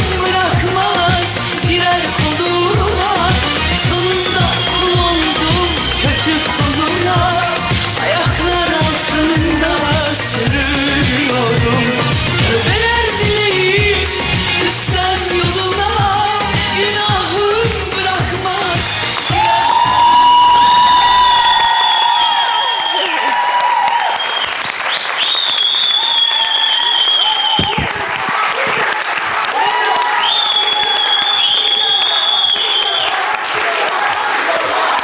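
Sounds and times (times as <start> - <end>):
live pop song with singer: 0.0 - 22.6
audience applauding: 0.2 - 9.1, 18.6 - 35.0.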